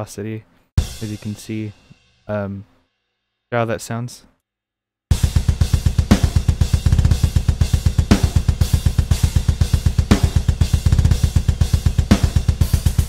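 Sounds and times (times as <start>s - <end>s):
heavy accented drum hit: 0.8s - 1.5s, 5.1s - 13.0s
steady cymbals: 0.8s - 2.8s, 5.1s - 13.0s
double-kick bass drum: 5.1s - 13.0s.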